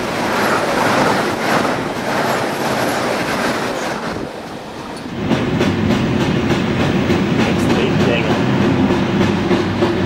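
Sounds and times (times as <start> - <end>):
train passing at speed: 0.0 - 10.0.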